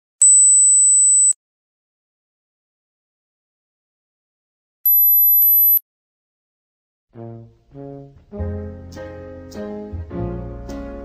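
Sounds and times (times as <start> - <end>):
high-pitched electronic beep: 4.9 - 5.8.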